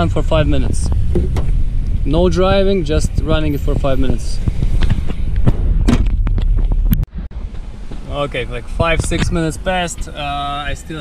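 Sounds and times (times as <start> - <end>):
steady low rumble: 0.0 - 11.0
wind rumbling on microphone: 0.0 - 11.0
camera handling knocks: 1.0 - 1.6.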